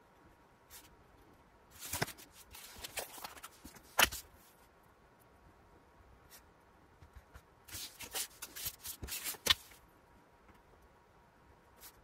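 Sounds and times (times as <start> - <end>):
paper rustling and scraping: 1.7 - 4.6, 7.7 - 9.8.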